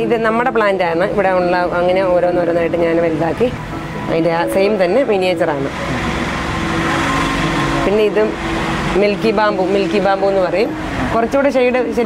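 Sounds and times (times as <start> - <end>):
steady held tone: 2.2 - 12.0.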